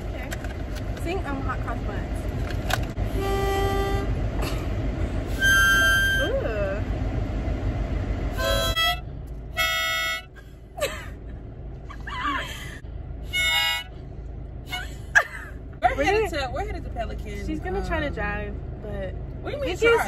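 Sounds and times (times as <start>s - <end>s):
harmonica notes and chords: 3.1s - 4.2s, 5.3s - 6.4s, 8.3s - 10.4s, 13.3s - 14.0s.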